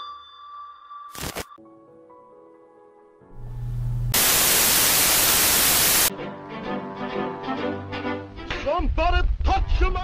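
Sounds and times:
low hum: 0:03.3 - 0:04.5
loud white noise static blast: 0:03.8 - 0:06.1.

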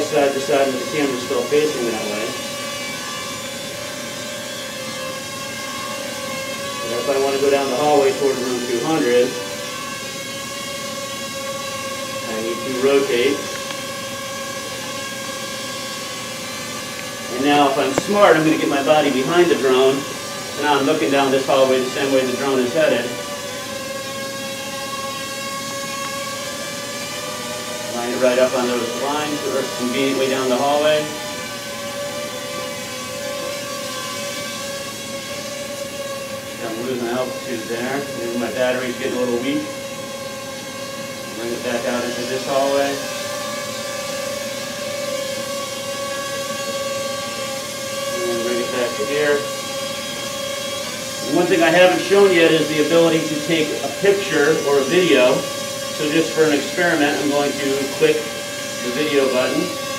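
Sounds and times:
quadcopter propellers buzzing: 0:00.0 - 0:59.9.

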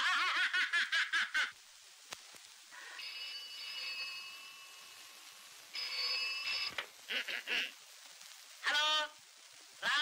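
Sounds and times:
man laughing: 0:07.1 - 0:07.7.

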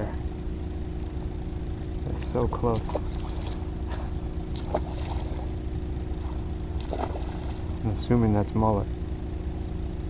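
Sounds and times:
steady low hum and rumble: 0:00.0 - 0:10.0
paddle splashes and drips: 0:02.7 - 0:05.6, 0:06.2 - 0:07.8.

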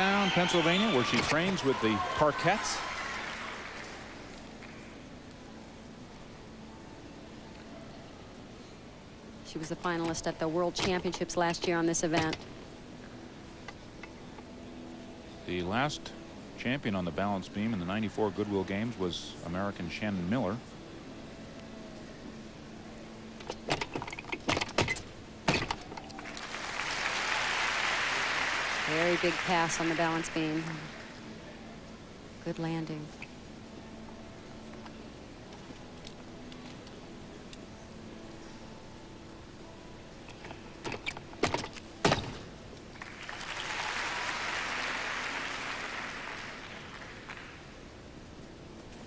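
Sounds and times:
audience applause: 0:00.0 - 0:04.3, 0:26.2 - 0:31.2, 0:43.0 - 0:47.7.

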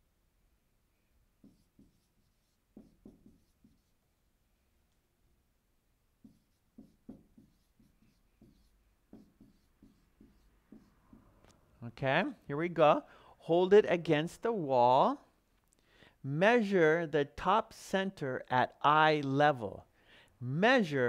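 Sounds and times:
marker writing on whiteboard: 0:01.3 - 0:04.3, 0:06.1 - 0:11.7.

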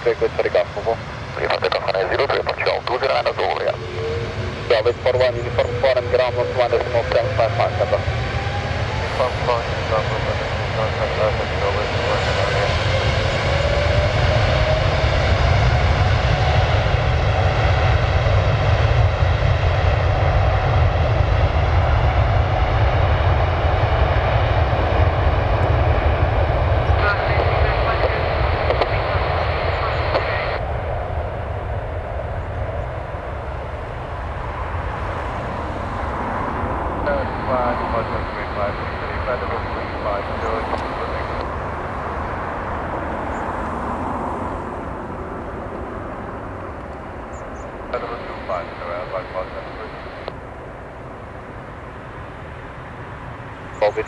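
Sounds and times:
jet engines roaring: 0:00.0 - 0:54.0.

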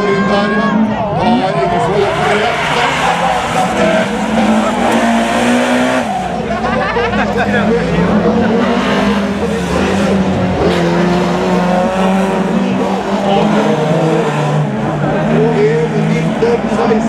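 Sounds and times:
racing car engines running hard: 0:00.0 - 0:17.0.

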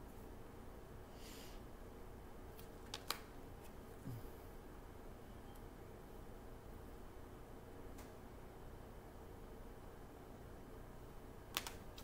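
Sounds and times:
faint low room hum: 0:00.0 - 0:12.0
cards clicking: 0:02.6 - 0:03.3, 0:11.6 - 0:12.0.

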